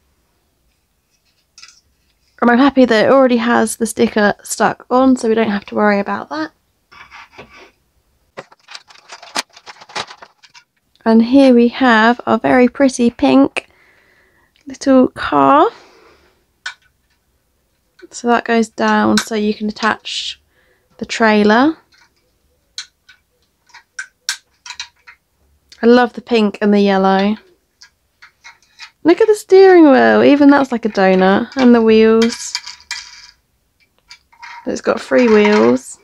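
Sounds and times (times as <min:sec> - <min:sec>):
plastic packaging crackling: 0:08.4 - 0:10.7
clicks of plastic toy parts: 0:22.8 - 0:25.2.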